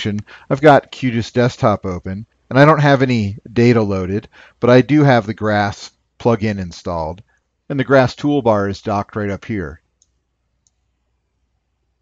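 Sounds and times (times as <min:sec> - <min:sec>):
computer mouse clicks: 0:10.0 - 0:10.9.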